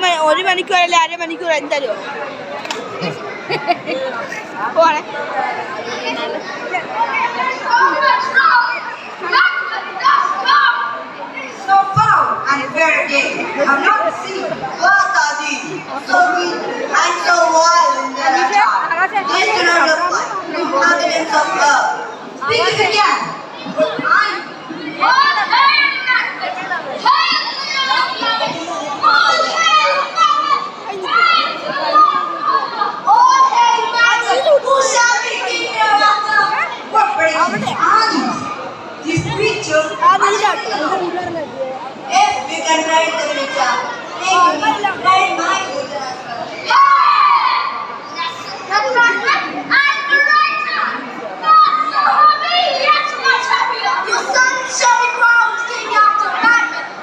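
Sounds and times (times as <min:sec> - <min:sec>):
children talking and calling out: 0:00.0 - 0:57.0.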